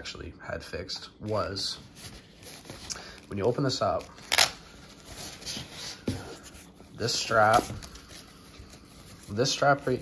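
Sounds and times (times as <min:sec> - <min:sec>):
glove straps rustling: 0:01.3 - 0:10.0
hook-and-loop strap ripping: 0:04.2 - 0:04.6.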